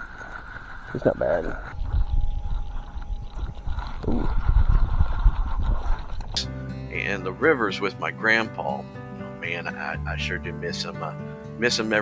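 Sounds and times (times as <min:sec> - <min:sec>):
wind buffeting microphone: 0:00.0 - 0:06.4.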